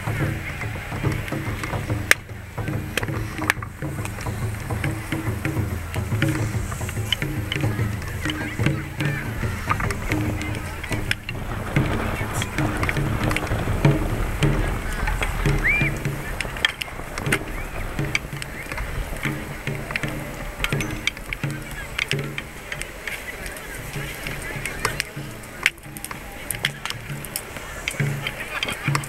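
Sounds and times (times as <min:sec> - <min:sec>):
bonfire crackling and popping: 0:00.0 - 0:29.0
crowd voices: 0:00.0 - 0:29.0
fire sharp crack: 0:00.0 - 0:29.0.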